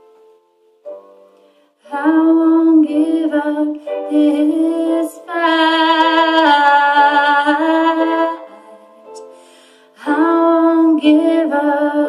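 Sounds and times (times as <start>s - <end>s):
woman singing mournful ballad: 1.9s - 8.9s, 9.9s - 12.0s.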